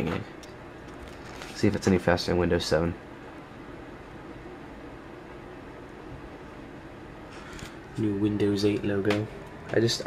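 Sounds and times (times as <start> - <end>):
low hum and hiss: 0.0 - 10.0.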